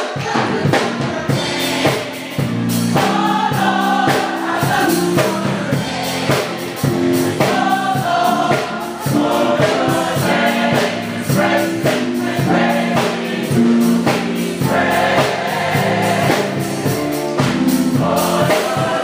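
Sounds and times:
gospel choir singing: 0.0 - 19.0
percussion steady beat: 0.0 - 19.0.

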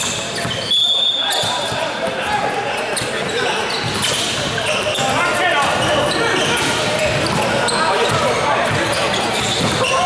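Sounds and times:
players and spectators calling out: 0.2 - 10.0
basketball bouncing on hardwood: 8.1 - 9.9.

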